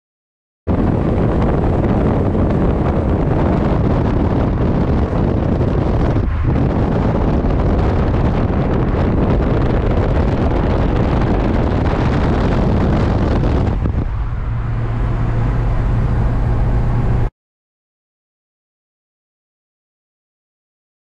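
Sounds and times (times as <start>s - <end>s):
low in-cabin drone: 0.7s - 17.3s
tyre and road noise: 0.7s - 17.3s
wind buffeting microphone: 0.7s - 17.3s.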